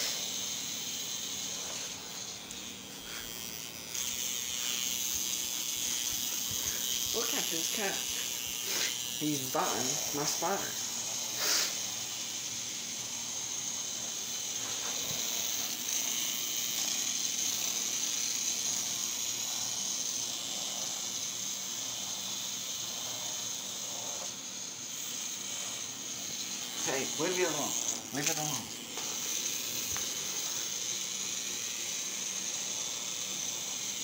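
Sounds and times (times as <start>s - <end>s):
toy motor whirring: 0.0s - 34.0s.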